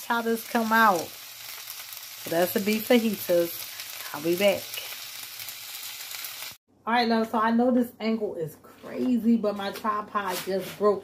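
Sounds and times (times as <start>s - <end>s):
meat sizzling in a pot: 0.0s - 6.6s.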